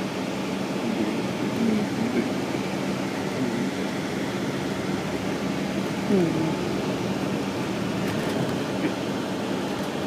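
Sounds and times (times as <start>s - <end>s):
diesel engine hum: 0.0s - 10.0s
tyre and road noise: 1.9s - 10.0s.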